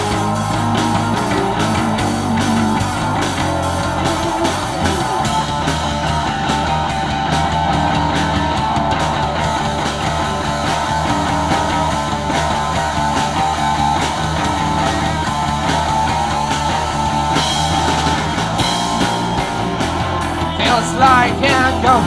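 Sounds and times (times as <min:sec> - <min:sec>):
bass guitar: 0:00.0 - 0:22.0
drum kit: 0:00.0 - 0:22.0
electric guitars: 0:00.0 - 0:22.0.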